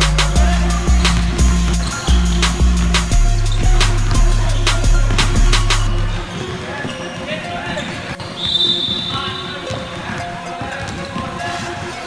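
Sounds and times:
voices echoing in hall: 0.0 - 12.0
high-pitched shoe squeal: 1.0 - 12.0
basketballs bouncing on hardwood floor: 7.8 - 11.7.

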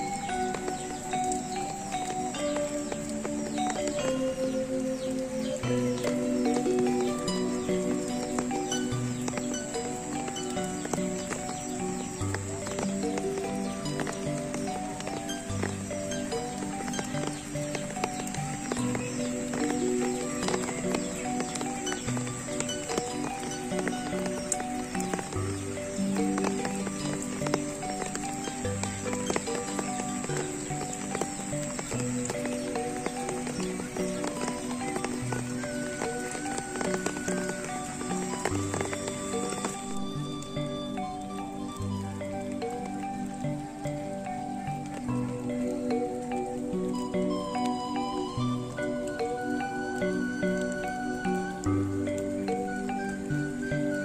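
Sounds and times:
gamelan music: 0.0 - 54.0
rain falling on water and foliage: 0.0 - 54.0.

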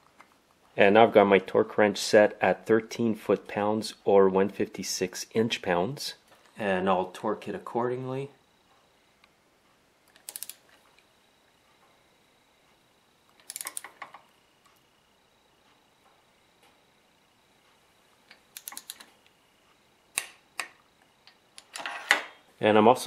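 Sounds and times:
torque wrench ratchet clicking: 10.1 - 10.6, 13.4 - 13.9.

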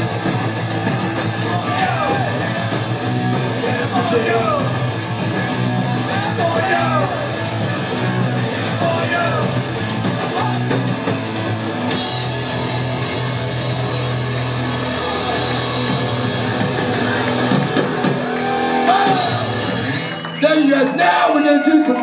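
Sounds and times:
drum kit: 0.0 - 20.4
electric guitar: 0.0 - 20.4
bass guitar: 0.0 - 21.0.

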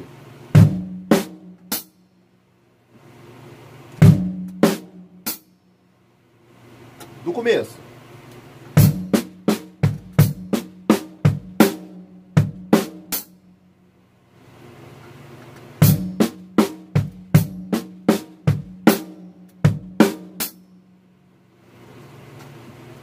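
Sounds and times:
acoustic drum kit played slowly: 0.0 - 2.3, 2.9 - 5.8, 6.6 - 23.0.

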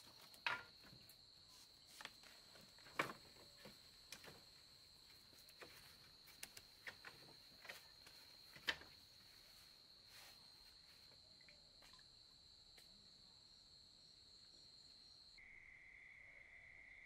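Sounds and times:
night insects trilling: 0.0 - 17.0.

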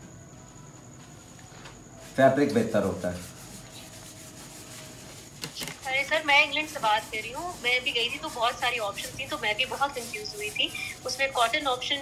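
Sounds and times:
paintbrush scrubbing on canvas: 2.0 - 12.0.

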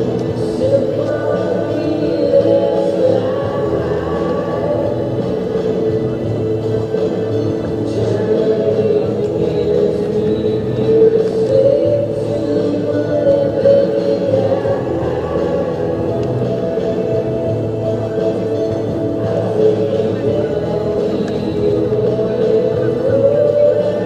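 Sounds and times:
background music with sung vocals: 0.0 - 24.0.

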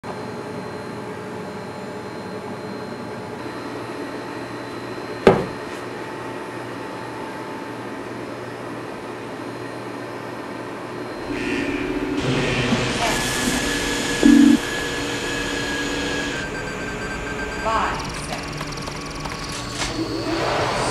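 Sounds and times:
machine hum with held tones: 0.1 - 20.9
loud sound: 11.2 - 14.8.

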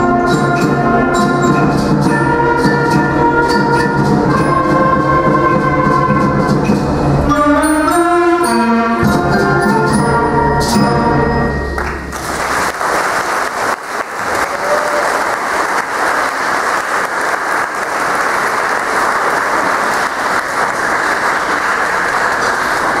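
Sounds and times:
audience applause: 11.8 - 23.0.

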